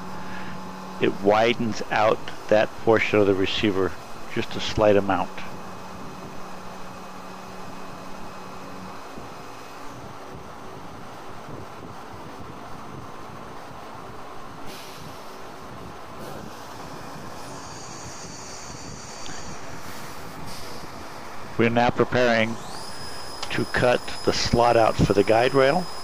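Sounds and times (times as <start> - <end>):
high whine: 0.0 - 26.0
milling machine running: 16.7 - 26.0
hiss: 17.4 - 21.0.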